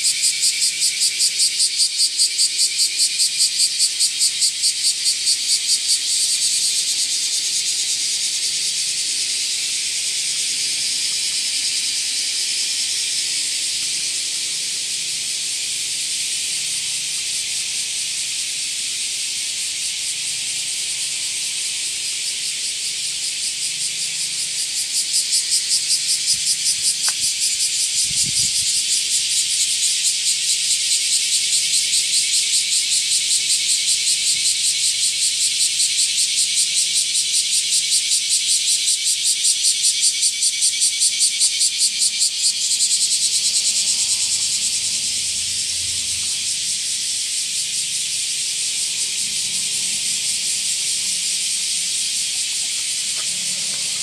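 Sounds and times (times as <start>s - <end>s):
cicadas buzzing: 0.0s - 54.0s.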